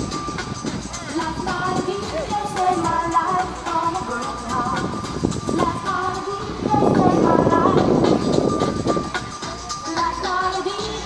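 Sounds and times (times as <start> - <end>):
pop music: 0.0 - 11.0.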